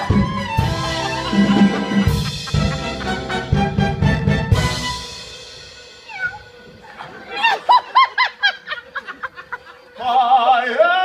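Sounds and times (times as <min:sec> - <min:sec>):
orchestra chord: 0:00.0 - 0:07.3.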